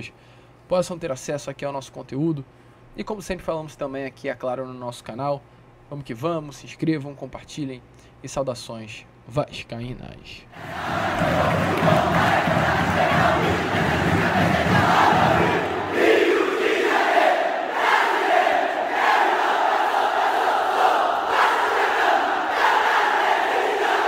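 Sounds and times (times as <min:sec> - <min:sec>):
stadium crowd chanting and singing: 0:10.5 - 0:24.0.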